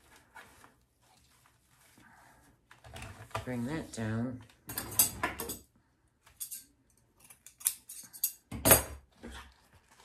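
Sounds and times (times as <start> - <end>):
ribbon rustling and crinkling: 0.0 - 3.2.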